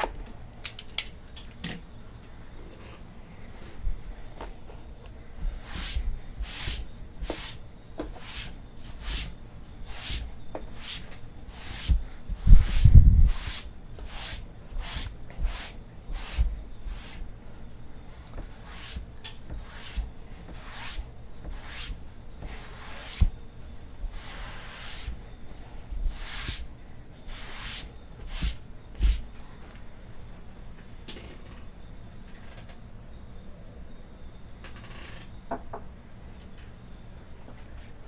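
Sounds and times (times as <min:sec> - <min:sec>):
cardboard brushing and sliding: 0:05.4 - 0:17.2, 0:18.4 - 0:23.4, 0:24.1 - 0:25.2, 0:26.1 - 0:26.7, 0:27.3 - 0:29.3.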